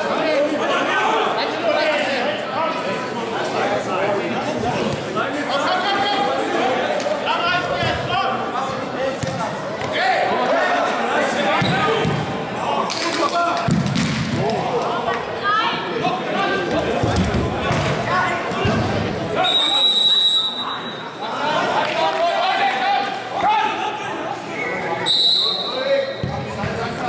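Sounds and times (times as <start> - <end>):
referee's whistle blast: 19.4 - 21.0, 25.0 - 26.2.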